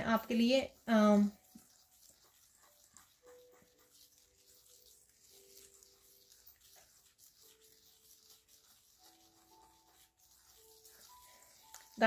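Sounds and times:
fingers rubbing through dry sand: 0:00.0 - 0:12.0.

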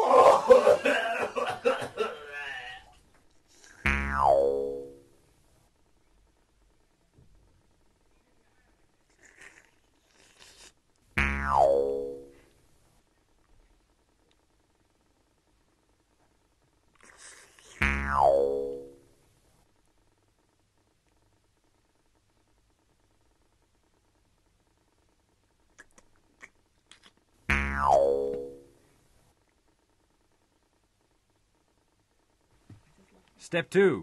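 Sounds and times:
cartoon descending pitched tone: 0:03.8 - 0:05.0, 0:11.2 - 0:12.4, 0:17.8 - 0:19.0, 0:27.5 - 0:28.7.

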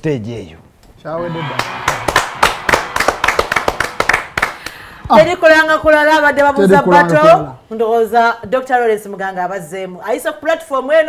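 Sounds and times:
people clapping: 0:01.2 - 0:05.4.

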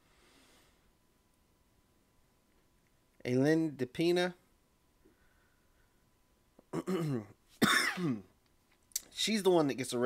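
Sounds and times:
person coughing: 0:06.7 - 0:08.3.

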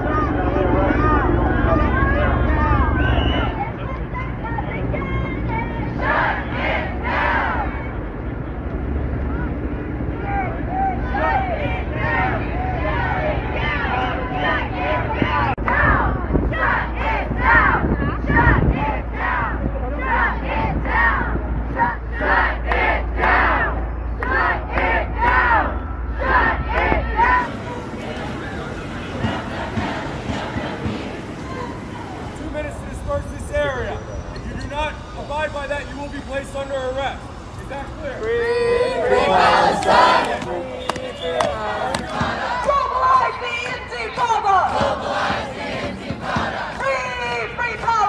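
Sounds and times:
faint voices: 0:00.0 - 0:22.0, 0:24.4 - 0:48.0
city street background: 0:00.0 - 0:48.0
steady low rumble: 0:00.0 - 0:48.0
crowd shouting in unison: 0:04.9 - 0:08.0, 0:10.2 - 0:32.4, 0:38.2 - 0:48.0.

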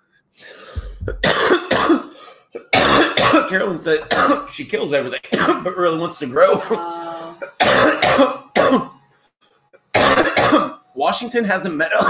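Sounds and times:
man coughing harshly: 0:00.8 - 0:04.5, 0:05.3 - 0:05.7, 0:07.4 - 0:09.0, 0:09.9 - 0:10.8.

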